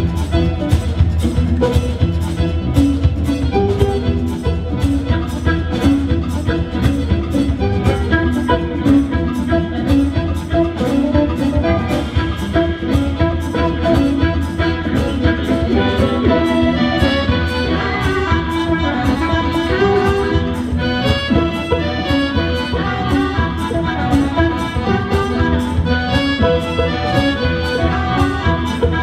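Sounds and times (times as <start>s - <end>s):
accordion: 0.0s - 29.0s
drums keeping steady beat: 0.0s - 29.0s
electric mandolin: 0.0s - 29.0s
harmonica: 0.0s - 29.0s
upright double bass: 0.0s - 29.0s.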